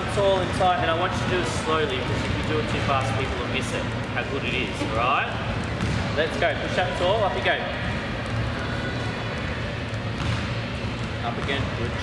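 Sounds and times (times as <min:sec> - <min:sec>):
low rumble of gym hall: 0:00.0 - 0:12.0.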